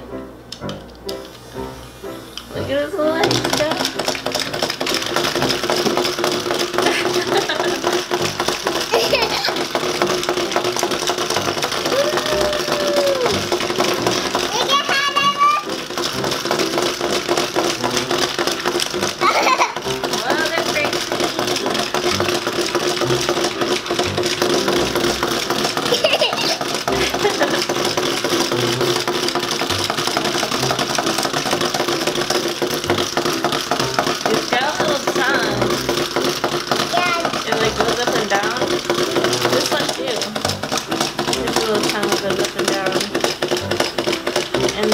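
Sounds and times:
toy motors buzzing rattle: 0.6s - 44.9s.

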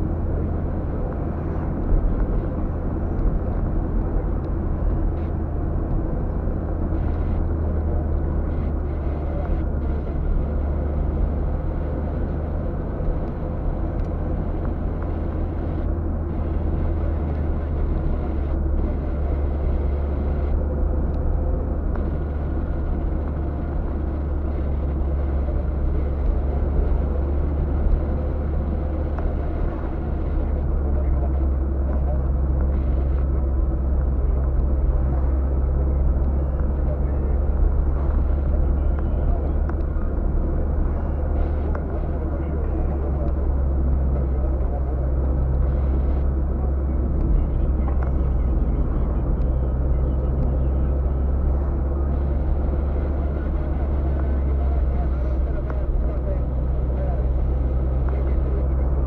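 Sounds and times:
car interior engine and road drone: 0.0s - 59.0s.

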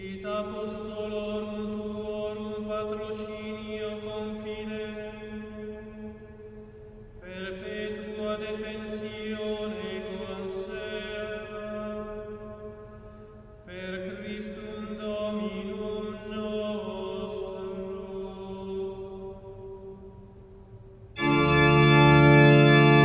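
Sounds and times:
breath: 6.4s - 7.2s, 12.8s - 13.6s.

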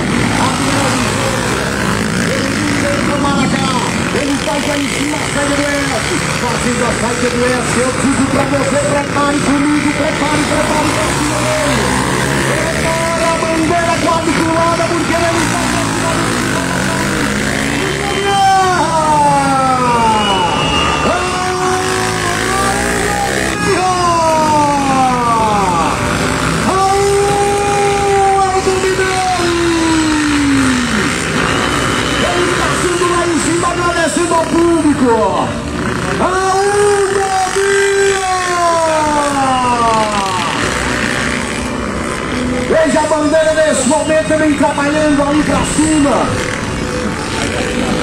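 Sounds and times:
off-road motorcycle engines revving: 0.0s - 48.0s.

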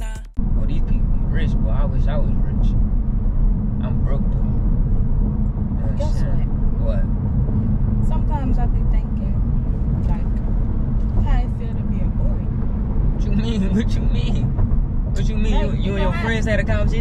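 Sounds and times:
voices: 0.0s - 2.8s, 3.8s - 4.6s, 5.8s - 7.1s, 8.0s - 9.4s, 10.0s - 10.4s, 11.2s - 12.5s, 13.2s - 14.5s, 15.2s - 17.0s
car road and engine rumble: 0.0s - 17.0s.

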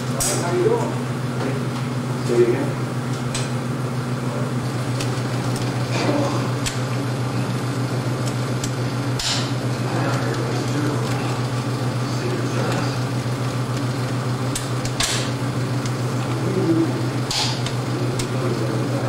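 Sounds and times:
projection equipment hum: 0.0s - 19.0s.

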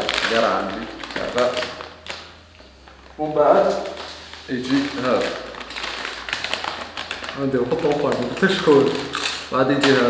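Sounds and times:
person speaking: 0.0s - 1.9s, 3.1s - 5.7s, 7.1s - 10.0s
plastic chip bag crinkling: 0.0s - 10.0s.

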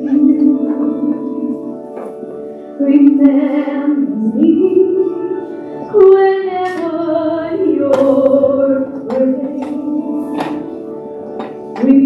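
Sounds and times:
sustained instrumental chords: 0.0s - 12.0s
woman singing a slow hymn: 5.9s - 10.6s.

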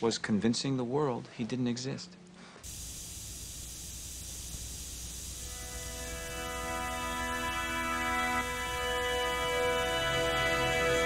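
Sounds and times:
recording hiss: 2.5s - 11.0s.

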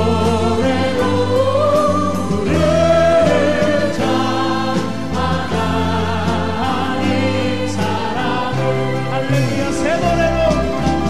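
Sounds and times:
choir singing gospel song: 0.0s - 11.0s
instrumental accompaniment: 0.0s - 11.0s.

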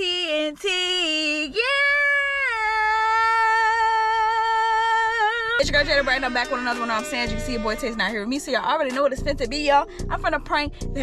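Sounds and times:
woman singing long high note: 1.1s - 8.3s.

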